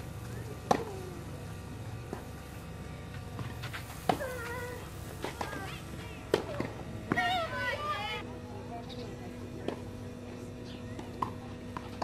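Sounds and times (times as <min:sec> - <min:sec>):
child calling out: 0:07.1 - 0:08.2.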